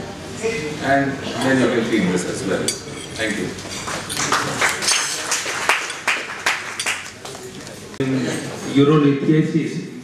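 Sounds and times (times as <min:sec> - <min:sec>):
audience applauding: 0:03.9 - 0:07.5.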